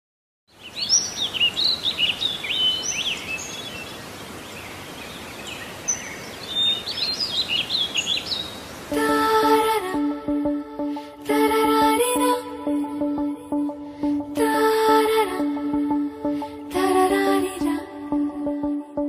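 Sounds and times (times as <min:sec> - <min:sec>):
birds chirping: 0:00.5 - 0:08.9
outdoor hiss: 0:00.9 - 0:08.9
music: 0:08.9 - 0:19.0.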